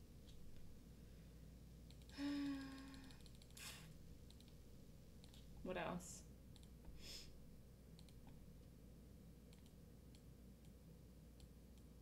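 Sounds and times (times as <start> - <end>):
woman humming: 2.1 - 3.8
quick breath: 7.0 - 7.4.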